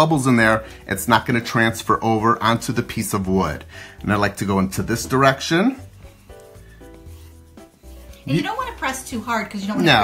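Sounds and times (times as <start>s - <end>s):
faint background music: 0.0s - 10.0s
squeegee rubbing on paper: 2.5s - 10.0s.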